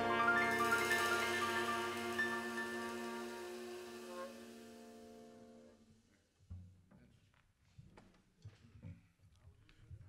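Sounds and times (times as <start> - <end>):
jazz band final chord: 0.0 - 5.8.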